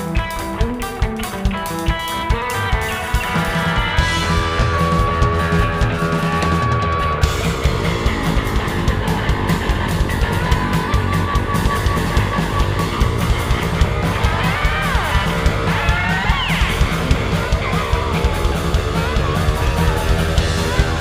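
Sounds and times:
guitar lead line bending pitch: 0.0s - 21.0s
rock band playing live: 0.0s - 21.0s.

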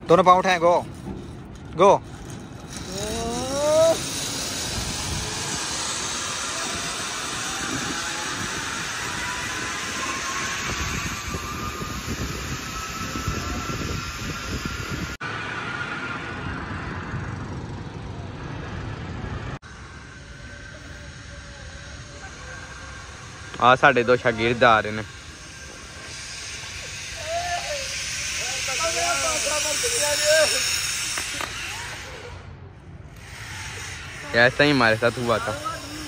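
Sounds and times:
zip-line pulleys whirring on cable: 0.1s - 36.0s
person shouting: 2.9s - 4.0s, 27.2s - 28.0s.

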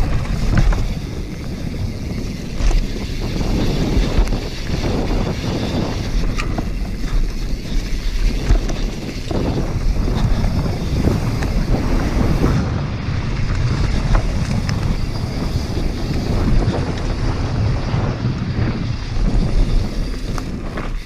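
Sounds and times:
bike rattling clicks: 0.0s - 21.0s
tyres rumbling over dirt: 0.0s - 21.0s
wind buffeting microphone: 0.0s - 21.0s.

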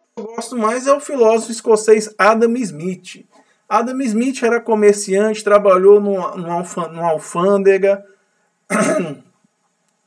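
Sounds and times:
man clearing throat: 8.7s - 9.4s.

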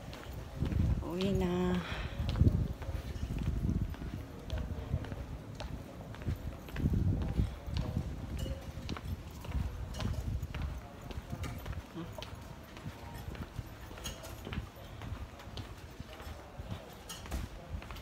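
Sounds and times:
footsteps: 0.0s - 18.0s.

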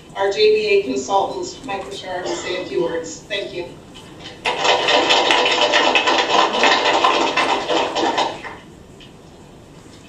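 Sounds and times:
audience applauding: 4.2s - 8.6s.

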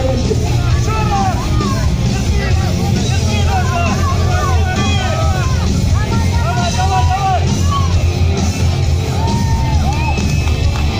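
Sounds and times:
heavy low rumble: 0.0s - 10.9s
loud music from loudspeakers: 0.0s - 10.9s
spectators shouting: 0.0s - 10.9s.

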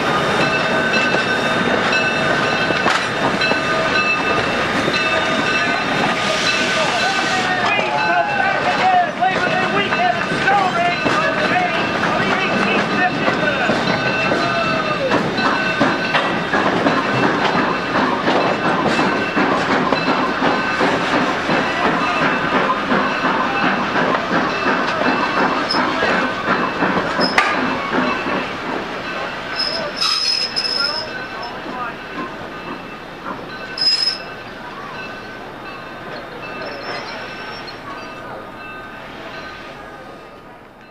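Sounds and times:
train rumble and clatter: 0.0s - 40.9s
train wheels squealing: 22.0s - 28.5s, 29.1s - 31.7s, 33.5s - 35.3s, 36.0s - 38.4s.

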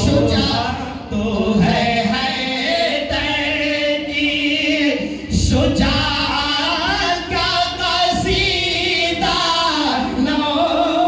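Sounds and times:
men singing into microphones: 0.0s - 11.0s.

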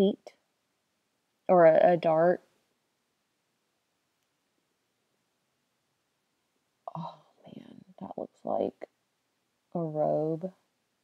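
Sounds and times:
woman speaking: 0.0s - 0.4s, 1.5s - 2.4s, 6.9s - 8.9s, 9.8s - 10.5s.

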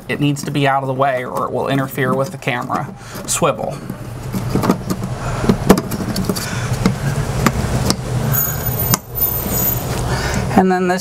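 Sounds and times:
low mechanical hum: 0.0s - 10.6s.

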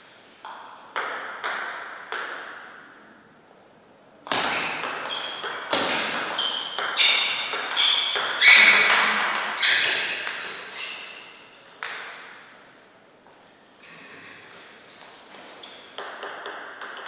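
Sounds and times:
ping pong ball hitting bats: 0.4s - 3.0s, 4.2s - 12.5s, 15.7s - 17.0s
ball bouncing on table: 4.2s - 10.6s, 11.6s - 12.4s, 16.0s - 17.0s.

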